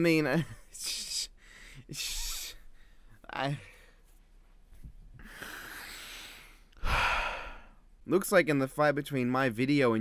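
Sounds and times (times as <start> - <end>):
man breathing in: 1.4 - 1.9, 5.2 - 7.8
man sighing: 5.2 - 7.8.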